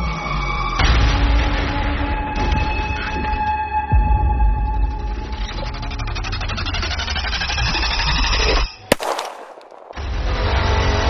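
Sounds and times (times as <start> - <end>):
pistol shot: 8.9 - 10.4.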